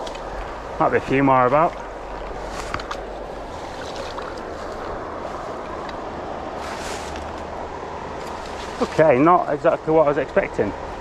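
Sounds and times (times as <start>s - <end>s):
wind rumbling on microphone: 0.0s - 9.5s
river flowing: 0.0s - 11.0s.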